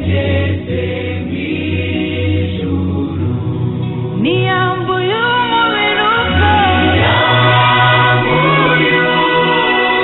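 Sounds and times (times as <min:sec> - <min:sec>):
choir singing gospel song: 0:00.0 - 0:10.0.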